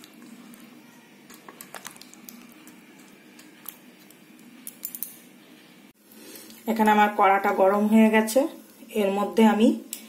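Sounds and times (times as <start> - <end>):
wet squishing of marinade: 0.0 - 4.2.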